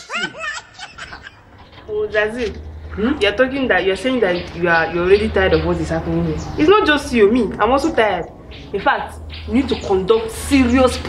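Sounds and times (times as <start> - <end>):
person snickering: 0.0 - 1.3
person speaking: 1.8 - 11.0.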